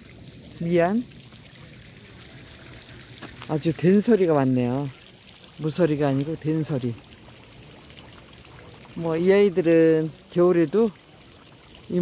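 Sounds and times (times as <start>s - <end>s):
trickle of running water: 0.0s - 12.0s.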